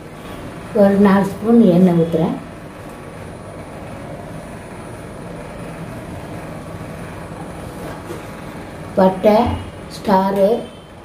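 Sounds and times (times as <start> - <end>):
steady rushing hum: 0.0 - 11.0.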